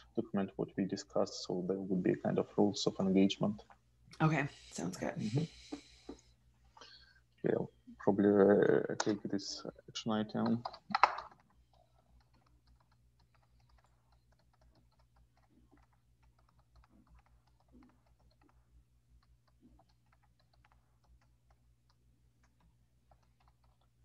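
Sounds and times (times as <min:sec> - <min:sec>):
low steady hum: 0:00.0 - 0:24.0
typing on computer keyboard: 0:10.4 - 0:24.0.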